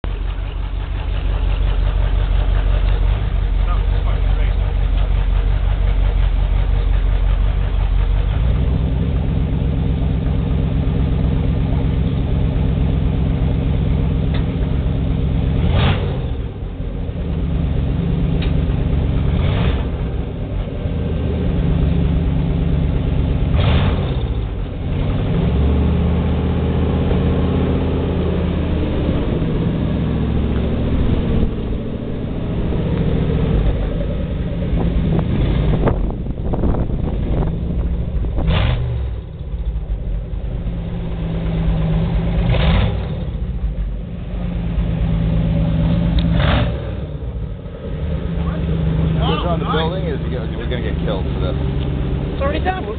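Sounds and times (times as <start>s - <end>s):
loud engine revving: 0.0s - 52.9s.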